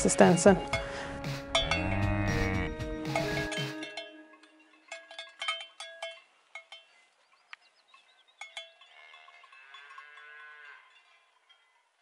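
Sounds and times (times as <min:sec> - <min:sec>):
cowbell clanking: 0:00.1 - 0:07.1, 0:07.9 - 0:11.9
calf mooing: 0:01.6 - 0:02.9, 0:08.9 - 0:11.0.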